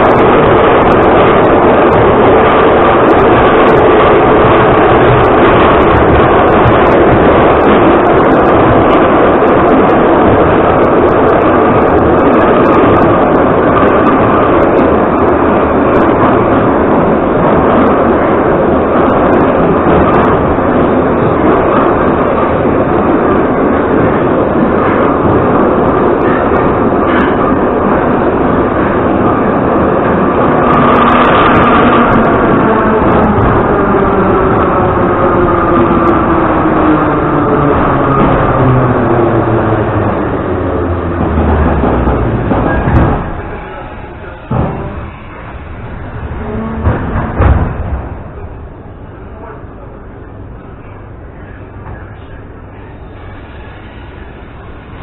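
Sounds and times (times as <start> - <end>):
metro car rumbling and rattling: 0.0 - 55.0.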